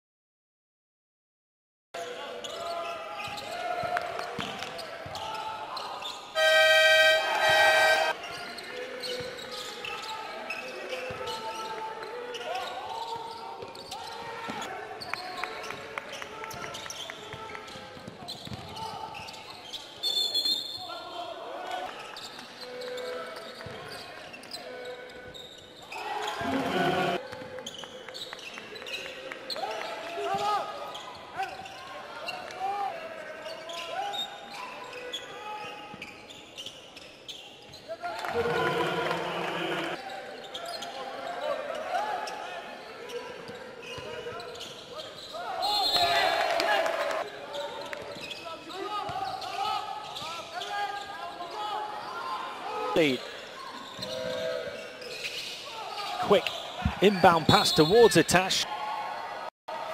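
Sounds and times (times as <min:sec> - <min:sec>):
players and crowd voices: 0:02.0 - 0:59.9
brief high tone: 0:06.4 - 0:08.1
loud buzzer horn: 0:06.4 - 0:08.2, 0:38.4 - 0:40.0.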